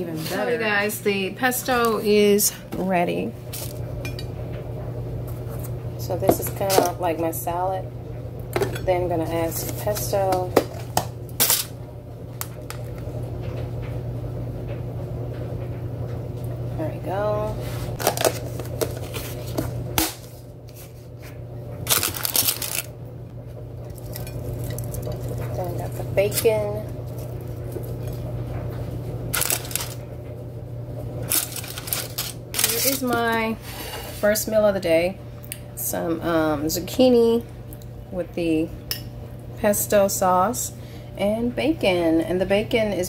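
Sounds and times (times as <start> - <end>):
steady low hum: 0.0 - 43.0
bacon crackling: 21.8 - 23.0, 23.8 - 28.2, 29.3 - 30.0, 31.2 - 33.2.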